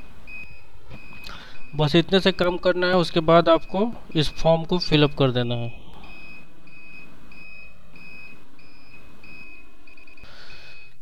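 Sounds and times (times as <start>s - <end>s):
high-pitched electronic beeps: 0.0s - 5.2s, 6.0s - 11.0s.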